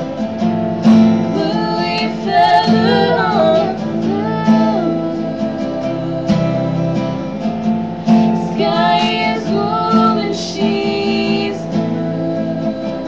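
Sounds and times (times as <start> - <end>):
acoustic guitar strummed: 0.0 - 13.0
women singing: 0.0 - 13.0.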